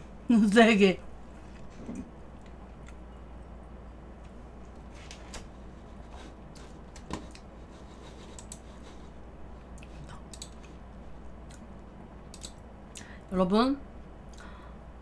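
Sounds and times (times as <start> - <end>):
steady low hum: 0.0 - 15.0
computer mouse clicks: 8.2 - 8.7, 9.8 - 10.7, 12.3 - 12.6.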